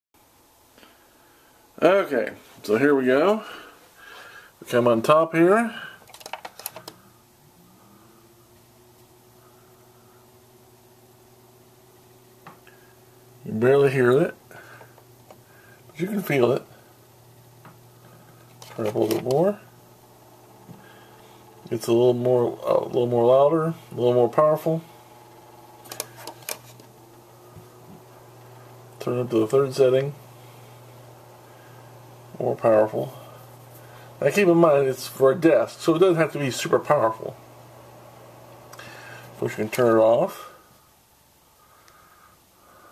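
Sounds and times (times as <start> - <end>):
fan motor humming: 0.8 - 42.9.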